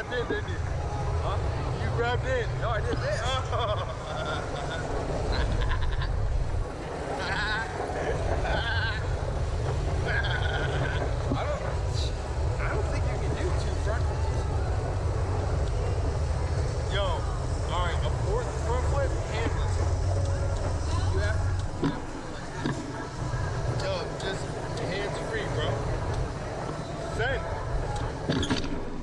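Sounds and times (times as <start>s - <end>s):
men laughing and calling out: 2.9s - 12.2s.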